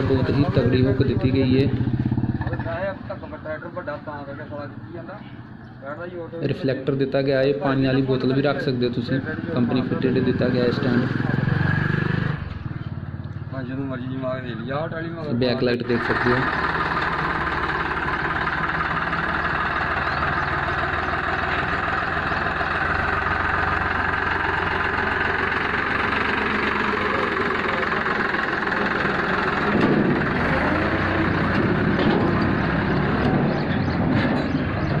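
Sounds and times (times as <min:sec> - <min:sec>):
tractor diesel engine idling: 0:00.0 - 0:11.6, 0:12.4 - 0:35.0.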